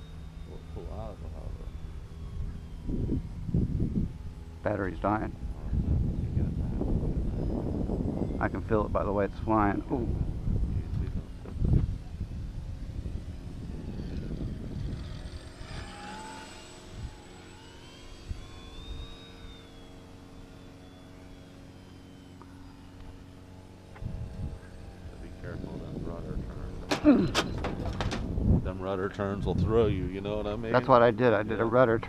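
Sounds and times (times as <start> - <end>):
model plane motor whining: 0.0 - 32.0
wind noise on microphone: 0.2 - 19.6, 24.0 - 30.9.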